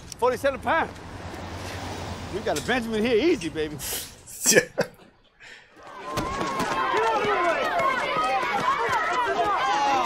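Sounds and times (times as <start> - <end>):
crowd of kids yelling: 5.8 - 10.0.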